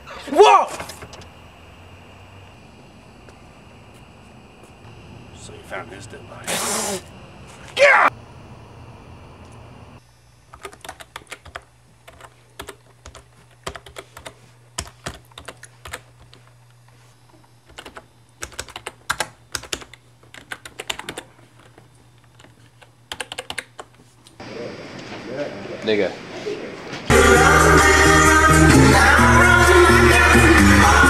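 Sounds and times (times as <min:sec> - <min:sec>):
steady low hum: 0:00.0 - 0:30.0
typing on computer keyboard: 0:10.5 - 0:16.4, 0:17.7 - 0:24.0.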